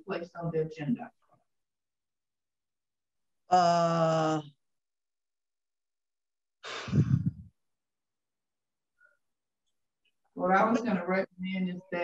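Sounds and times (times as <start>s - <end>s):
person sighing: 3.5s - 4.6s, 6.6s - 7.5s.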